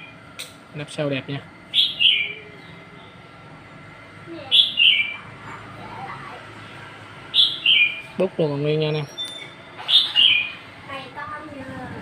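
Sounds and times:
bird chirping: 0:01.7 - 0:03.2, 0:04.5 - 0:05.3, 0:06.6 - 0:08.2, 0:08.9 - 0:10.7.

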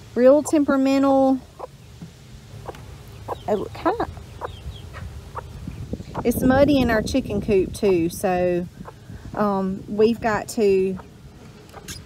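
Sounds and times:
hen clucking and squawking: 0:02.6 - 0:06.4, 0:08.7 - 0:09.1, 0:10.9 - 0:12.0.

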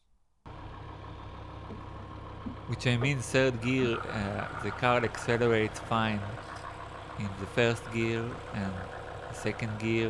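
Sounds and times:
car engine idling: 0:00.5 - 0:10.0.

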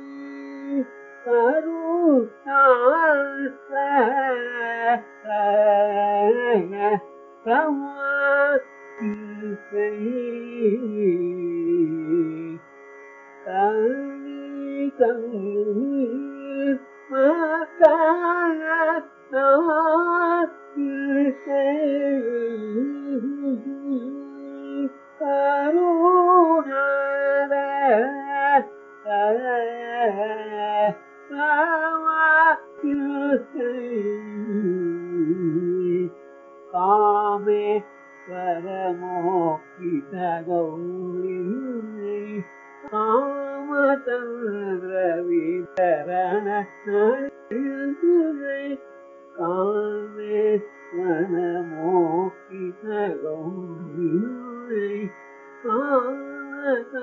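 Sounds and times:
man singing with ornaments: 0:00.0 - 0:12.6, 0:13.4 - 0:57.0.

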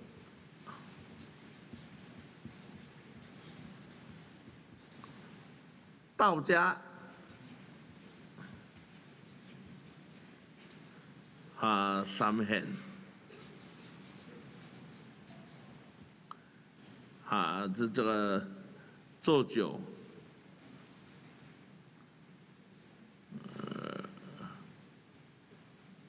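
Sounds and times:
marker pen scratching on board: 0:00.0 - 0:05.6, 0:07.0 - 0:10.9, 0:12.9 - 0:16.1, 0:20.0 - 0:21.7, 0:25.2 - 0:26.0.

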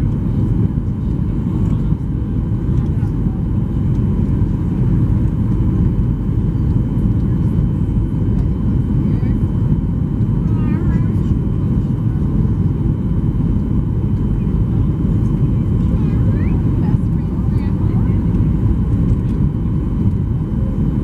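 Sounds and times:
airplane cabin roar: 0:00.0 - 0:21.0.

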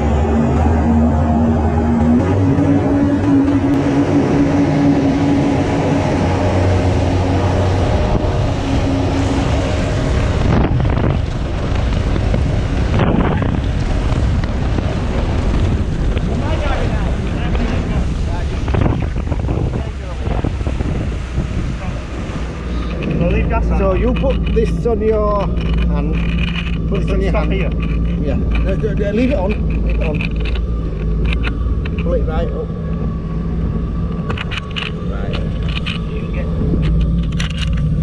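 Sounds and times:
speedboat engine hum: 0:00.0 - 0:38.0
water rushing past hull: 0:00.0 - 0:38.0
wind buffeting microphone: 0:00.0 - 0:38.0.

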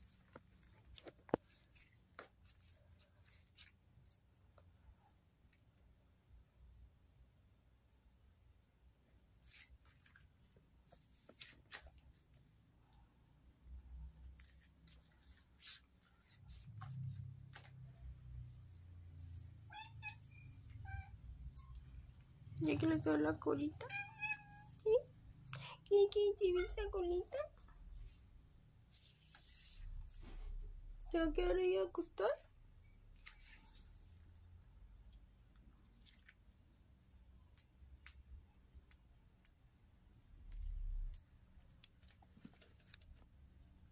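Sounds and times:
cat meowing: 0:19.7 - 0:21.2, 0:23.8 - 0:24.8.

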